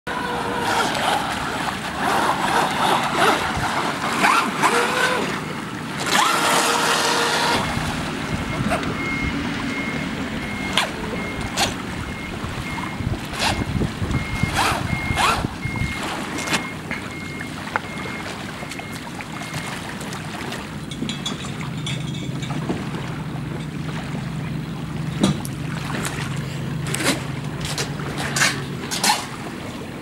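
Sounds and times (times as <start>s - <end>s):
wind on microphone: 0.1s - 5.3s, 7.2s - 16.4s
electric boat motor whining: 0.1s - 19.8s
water splashing: 0.1s - 30.0s
high electronic beep: 8.4s - 19.7s.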